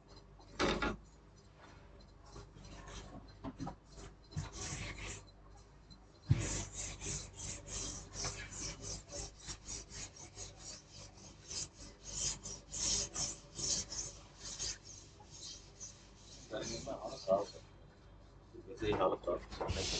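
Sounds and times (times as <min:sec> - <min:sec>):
duster rubbing on chalkboard: 0:02.6 - 0:05.2, 0:06.3 - 0:19.9.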